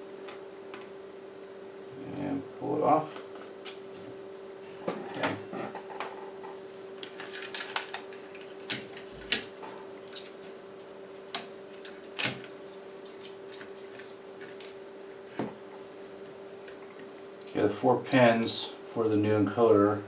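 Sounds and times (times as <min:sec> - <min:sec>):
steady hum: 0:00.0 - 0:20.0.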